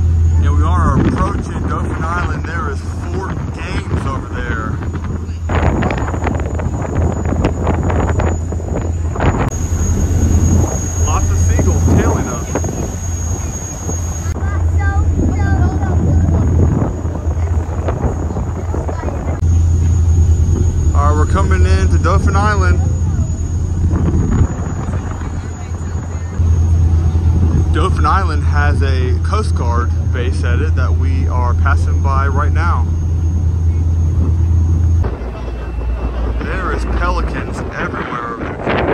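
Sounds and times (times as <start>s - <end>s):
steady low rumble: 0.0s - 38.9s
voices: 0.0s - 38.9s
wind buffeting microphone: 0.0s - 38.9s.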